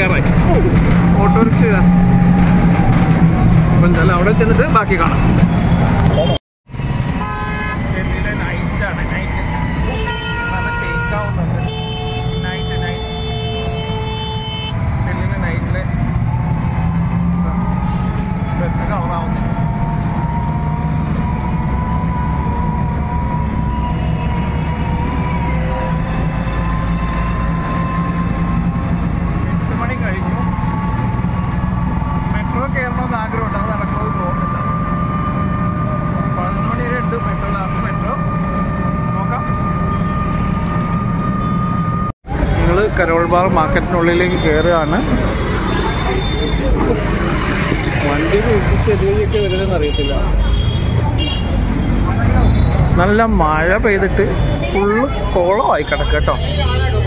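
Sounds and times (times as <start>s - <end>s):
engine and road rumble: 0.0s - 57.0s
vehicle horns honking: 5.6s - 8.1s, 9.7s - 14.8s, 44.0s - 46.8s, 49.1s - 52.8s, 54.2s - 57.0s.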